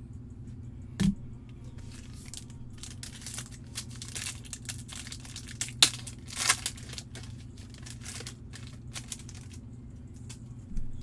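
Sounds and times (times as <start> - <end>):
foil wrapper tearing and crinkling: 1.8 - 9.6.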